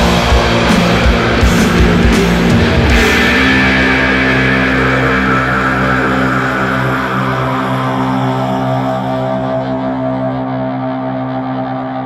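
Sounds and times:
distorted guitar chord ringing: 0.0s - 12.0s.

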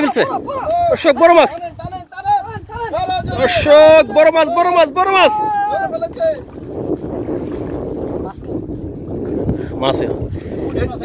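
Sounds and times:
waves washing against rocks: 0.0s - 11.0s
wind buffeting microphone: 0.0s - 11.0s.

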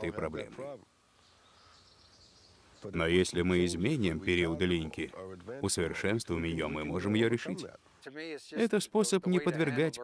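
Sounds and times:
man talking: 0.0s - 0.8s, 2.8s - 10.0s
faint background hiss: 0.0s - 10.0s.

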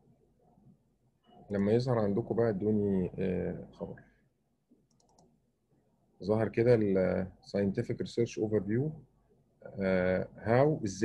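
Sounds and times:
faint clicks: 4.7s - 5.4s.

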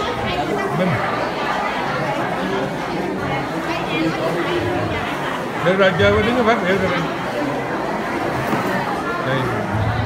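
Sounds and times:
chatter in a large hall: 0.0s - 10.0s.

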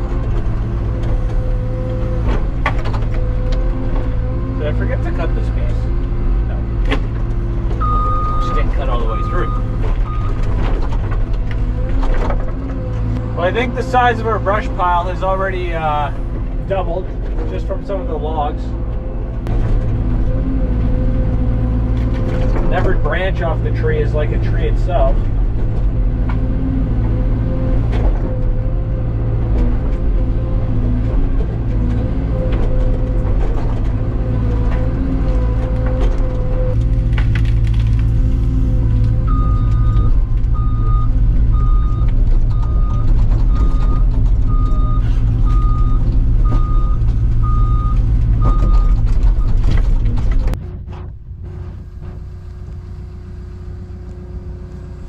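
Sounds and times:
excavator diesel engine running: 0.0s - 55.0s
travel alarm beeping: 7.8s - 8.6s, 39.3s - 49.6s.

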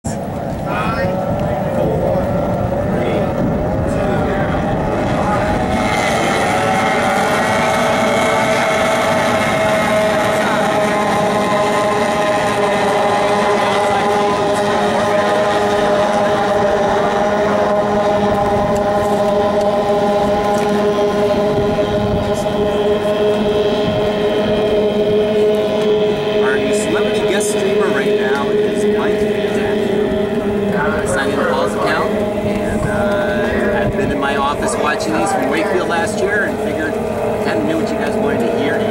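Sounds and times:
outboard motors racing: 0.0s - 38.9s.

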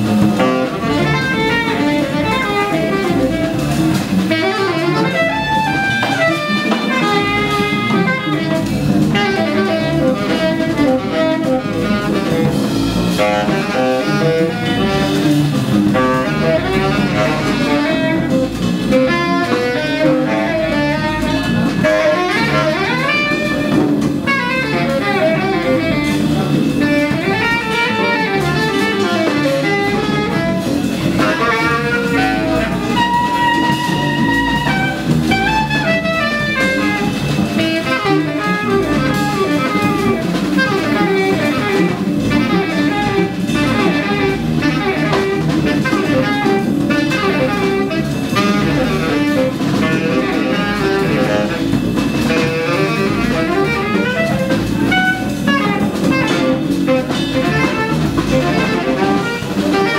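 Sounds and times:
drum kit with ride cymbal: 0.0s - 59.9s
plucked upright bass: 0.0s - 59.9s
saxophone soloing: 0.0s - 59.9s.

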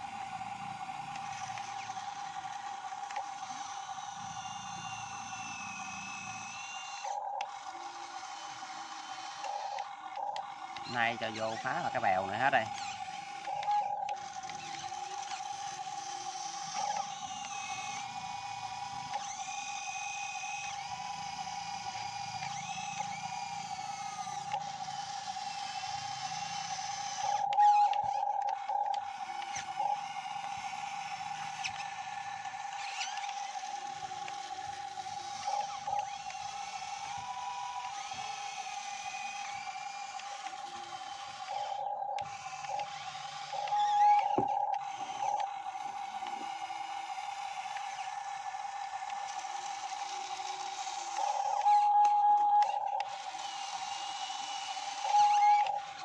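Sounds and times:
model excavator motors whining: 0.0s - 56.0s.

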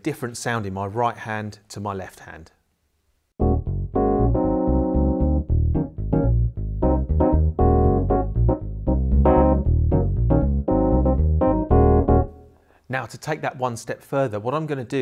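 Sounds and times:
electric bass notes: 3.4s - 12.5s
electric piano chords: 3.4s - 12.5s.

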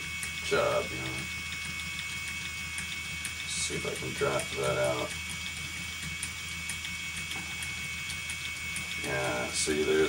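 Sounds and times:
electric spinning wheel motor whine: 0.0s - 10.0s.

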